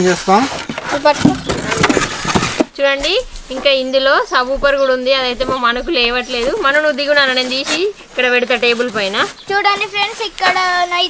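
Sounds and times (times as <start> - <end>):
voices talking: 0.0 - 11.0
plastic wrap crinkling: 6.0 - 11.0.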